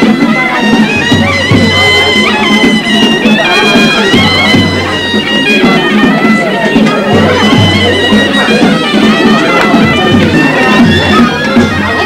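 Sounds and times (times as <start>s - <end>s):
low drum beats: 0.0s - 12.0s
reed wind instrument melody: 0.0s - 12.0s.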